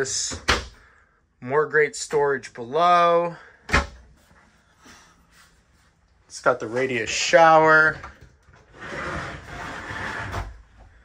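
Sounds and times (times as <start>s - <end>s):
sliding door rolling on track: 8.6s - 10.6s.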